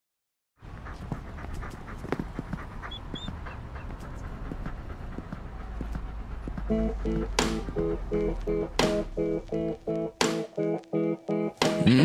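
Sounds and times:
dog panting: 0.6 - 9.8.

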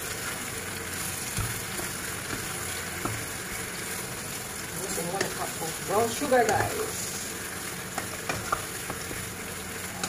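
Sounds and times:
apples sizzling in frying pan: 0.0 - 10.0
wooden spatula tapping and scraping pan: 1.3 - 3.3, 5.1 - 6.8, 7.9 - 9.2.

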